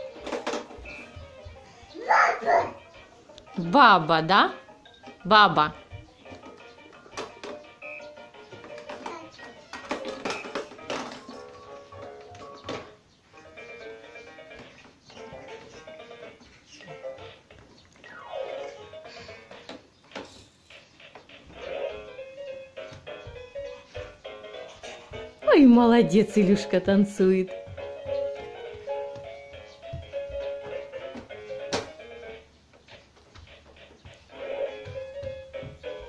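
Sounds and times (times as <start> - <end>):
toy playing electronic melodies: 0.0 - 3.4, 5.8 - 25.4.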